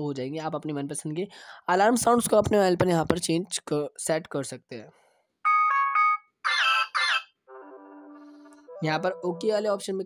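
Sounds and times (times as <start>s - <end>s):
phone alarm chime: 5.5s - 6.3s.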